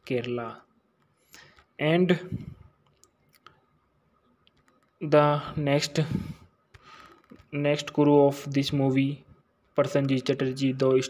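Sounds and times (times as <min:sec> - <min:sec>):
faint clicks: 0:04.4 - 0:05.0.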